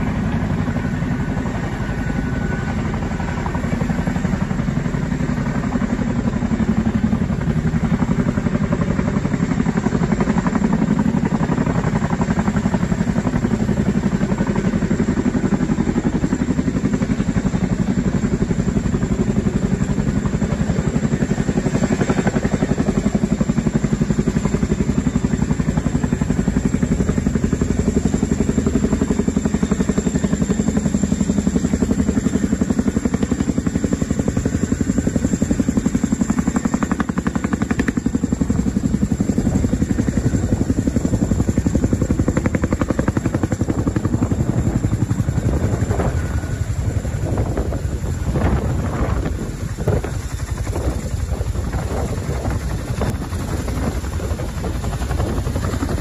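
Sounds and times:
helicopter rotors beating: 0.0 - 56.0.

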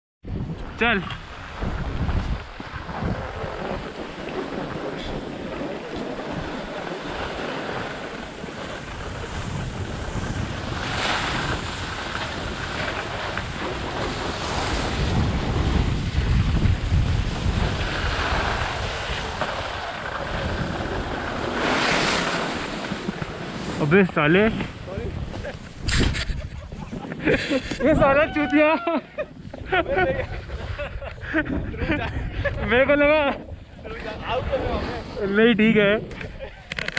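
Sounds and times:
low wind rumble: 0.2 - 36.9
wind rushing over microphone: 0.2 - 36.9
ski edges scraping snow: 1.2 - 28.7, 33.9 - 36.9.

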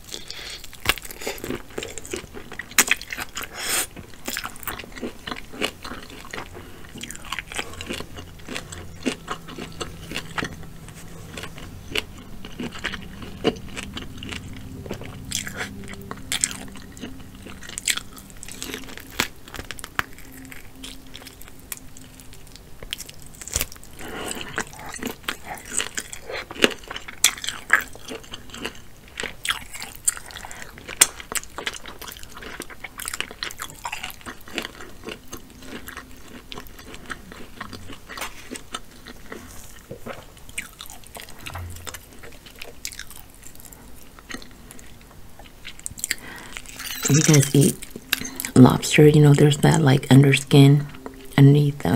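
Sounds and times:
chewing and biting shellfish: 0.0 - 51.4
wet mouth sounds: 45.8 - 48.8.

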